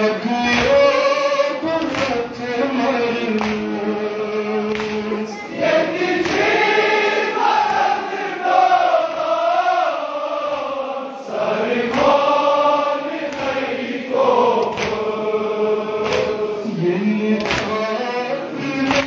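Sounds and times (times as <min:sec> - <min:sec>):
men chanting a lament: 0:00.0 - 0:19.0.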